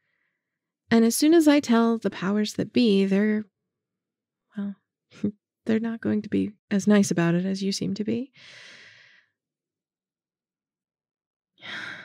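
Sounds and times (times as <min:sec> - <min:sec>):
woman breathing in: 0:08.4 - 0:09.4, 0:11.6 - 0:12.0.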